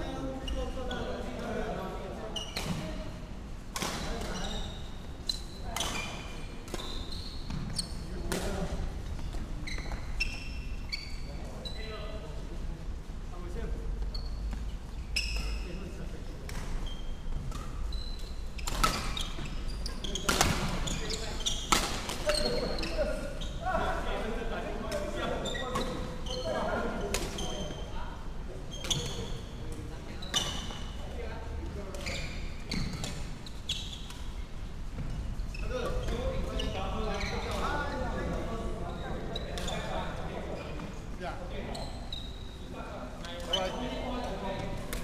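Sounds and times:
players' voices: 0:00.0 - 0:10.5, 0:18.9 - 0:45.0
shoes squeaking on wooden floor: 0:04.1 - 0:08.3, 0:09.0 - 0:12.2, 0:14.0 - 0:15.8, 0:16.7 - 0:24.0, 0:25.2 - 0:28.0, 0:28.7 - 0:31.2, 0:31.9 - 0:44.7
rackets hitting shuttlecock: 0:20.2 - 0:20.9, 0:21.7 - 0:22.5.

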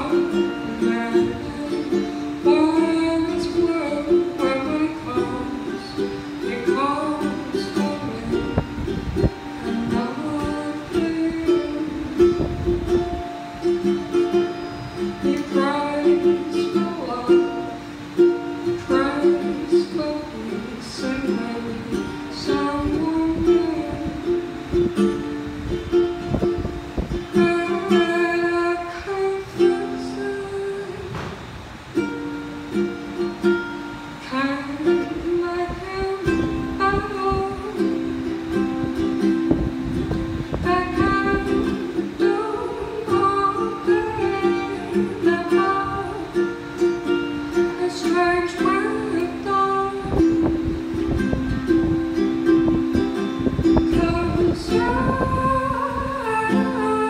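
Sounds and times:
ukulele strumming: 0:00.0 - 0:57.0
woman singing: 0:00.0 - 0:57.0.

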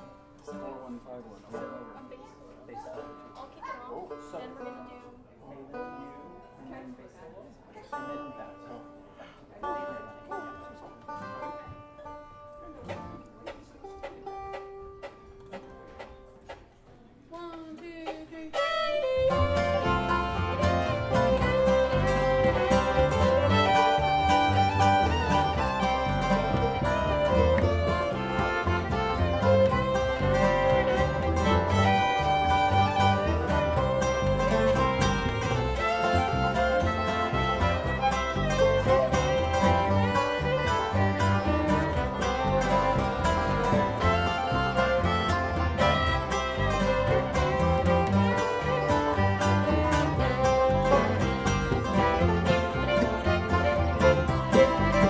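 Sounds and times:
acoustic guitar: 0:00.0 - 0:06.6, 0:17.4 - 0:55.0
fiddle: 0:00.0 - 0:07.0, 0:07.8 - 0:55.0
banjo: 0:00.0 - 0:55.0
upright bass: 0:19.1 - 0:55.0.

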